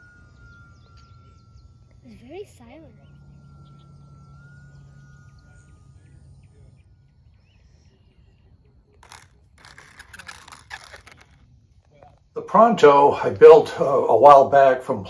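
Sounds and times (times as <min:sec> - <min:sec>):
model plane motor whining: 0:00.0 - 0:14.7
rough rustling noise bursts: 0:09.0 - 0:12.2.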